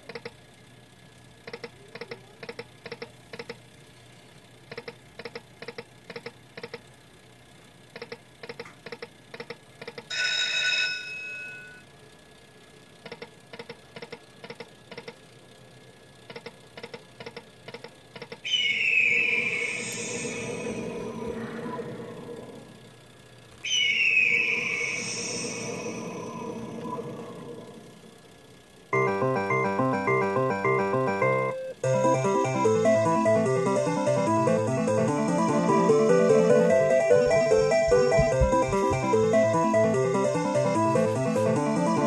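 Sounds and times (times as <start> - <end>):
quick electronic ticks: 0.0 - 0.4, 1.4 - 3.6, 4.7 - 6.9, 7.9 - 10.1, 13.0 - 15.2, 16.3 - 18.4
falling-tone win sound: 29.0 - 40.8.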